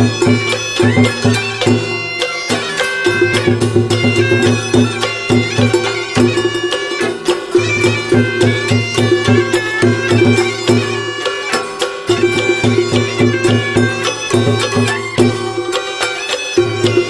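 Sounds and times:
quick percussion beat: 0.0s - 17.0s
reedy melody: 0.0s - 17.0s.

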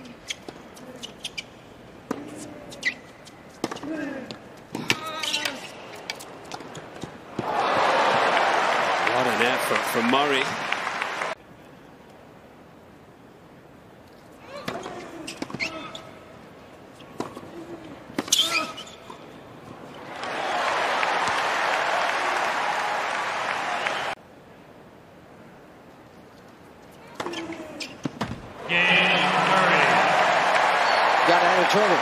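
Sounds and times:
crowd applauding and cheering: 7.4s - 11.4s, 20.0s - 24.2s, 28.9s - 32.0s.

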